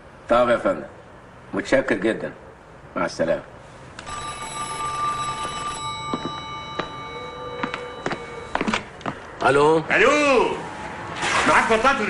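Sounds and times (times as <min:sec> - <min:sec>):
desk telephone ringing: 0:04.0 - 0:09.2.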